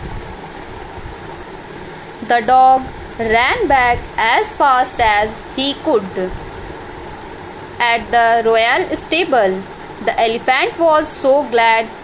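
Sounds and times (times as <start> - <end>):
low mechanical rumble with hiss: 0.0 - 12.0.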